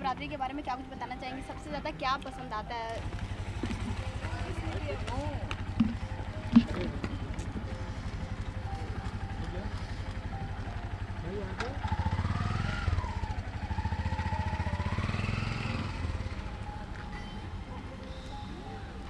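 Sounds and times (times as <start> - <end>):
engine running with low throb: 0.0 - 19.0
voices calling out: 0.8 - 19.0.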